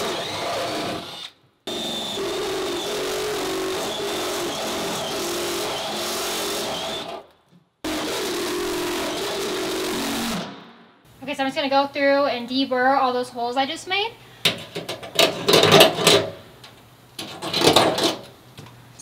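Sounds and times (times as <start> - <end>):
drill boring through sheet metal: 0.0 - 7.2, 7.9 - 10.5.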